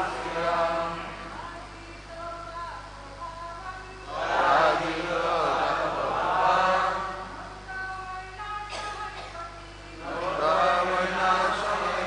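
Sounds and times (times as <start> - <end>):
person chanting a verse: 0.0 - 12.0.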